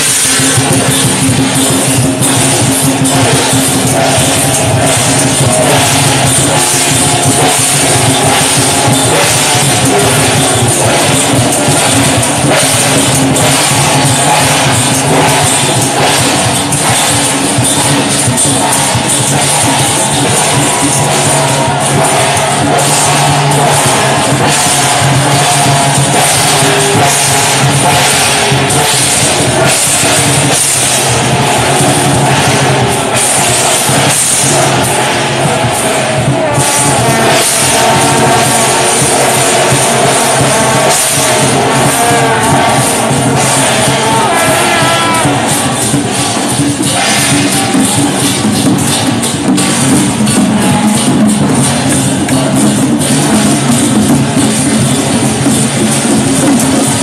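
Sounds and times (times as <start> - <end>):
brass gongs struck with mallets: 0.0 - 57.0
cymbals clashing: 0.0 - 57.0.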